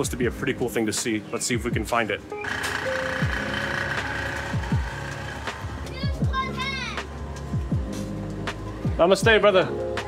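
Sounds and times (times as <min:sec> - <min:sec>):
held synth chord: 0:02.4 - 0:08.4.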